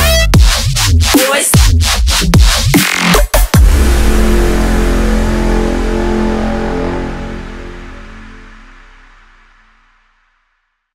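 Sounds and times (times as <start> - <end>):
dubstep music: 0.0 - 9.0.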